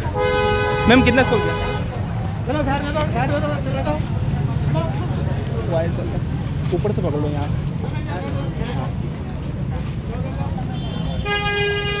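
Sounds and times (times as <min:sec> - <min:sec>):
low traffic rumble: 0:00.0 - 0:12.0
vehicle horn honk: 0:00.1 - 0:01.8, 0:10.8 - 0:12.0.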